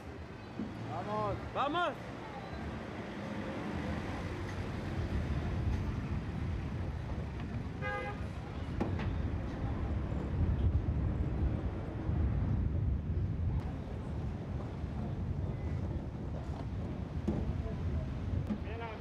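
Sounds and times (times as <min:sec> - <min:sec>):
truck engine and road noise: 0:00.0 - 0:19.0
vehicle horn toot: 0:07.8 - 0:08.4.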